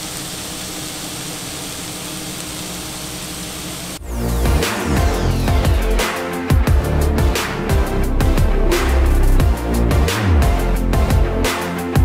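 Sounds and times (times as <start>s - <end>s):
patties sizzling on griddle: 0.0s - 4.0s.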